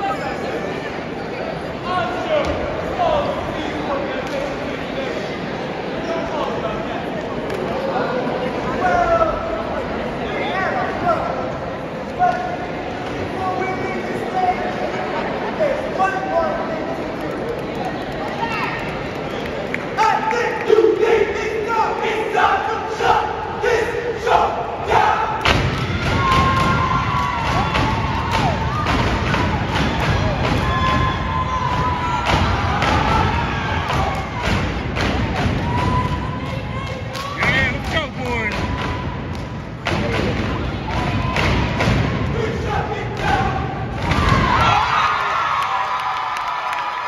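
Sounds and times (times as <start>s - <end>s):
audience whooping and cheering: 25.7s - 34.6s, 35.4s - 39.3s, 44.0s - 47.0s.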